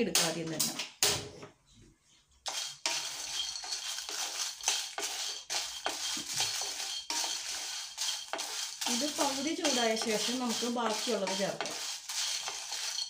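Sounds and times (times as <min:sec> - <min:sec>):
spatula scraping dry chillies in pan: 0:02.5 - 0:13.0.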